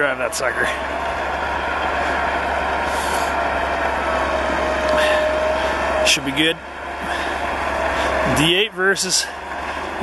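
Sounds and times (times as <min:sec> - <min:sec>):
bulldozer diesel engine running: 0:00.0 - 0:10.0
steady whine: 0:00.0 - 0:10.0.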